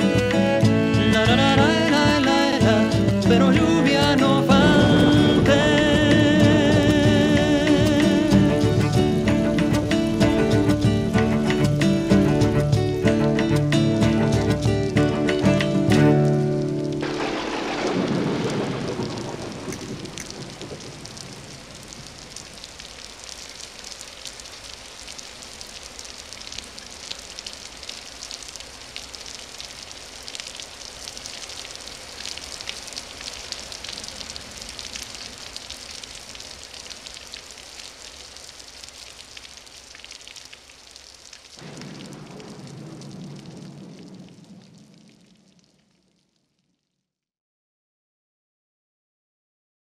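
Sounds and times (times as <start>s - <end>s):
rain falling: 0.0s - 46.7s.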